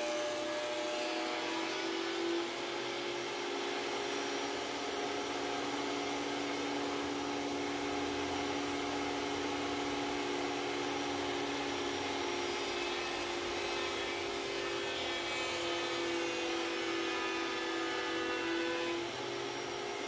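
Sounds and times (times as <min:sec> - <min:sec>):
thickness planer motor whine: 0:00.0 - 0:20.0.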